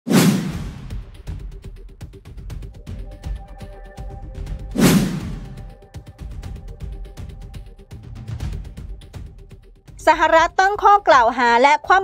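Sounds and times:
whoosh with a hit: 0:00.1 - 0:01.0, 0:04.7 - 0:05.7
percussive intro music: 0:00.1 - 0:10.6.

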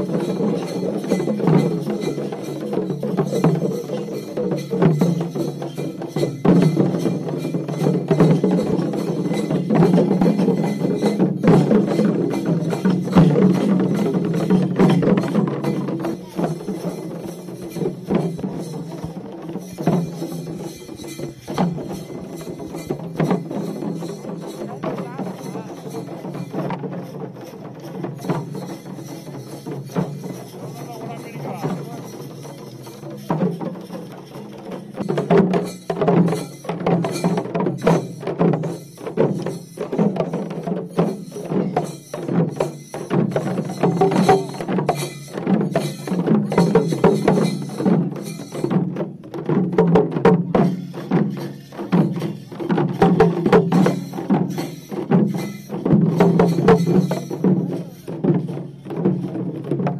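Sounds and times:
frame drums played with sticks: 0:00.0 - 0:59.9.

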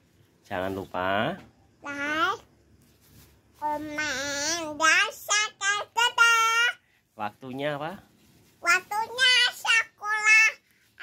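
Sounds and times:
child singing in a high voice: 0:03.6 - 0:06.8, 0:08.6 - 0:11.0.

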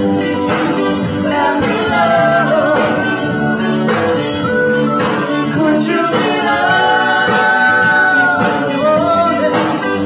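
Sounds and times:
bass guitar: 0:00.0 - 0:10.0
drums: 0:00.0 - 0:10.0
electric guitar: 0:00.0 - 0:10.0
woman singing: 0:05.6 - 0:09.6.

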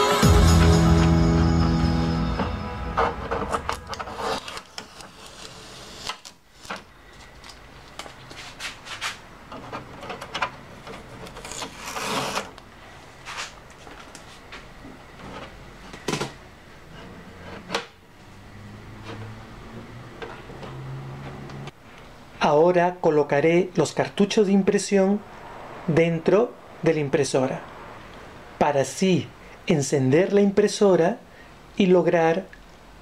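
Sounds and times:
background music: 0:00.0 - 0:04.4
protective tape pulled off: 0:03.5 - 0:06.8, 0:11.2 - 0:12.6
rustling scrape: 0:03.5 - 0:06.8, 0:08.2 - 0:09.8, 0:10.9 - 0:12.5, 0:13.2 - 0:13.6.

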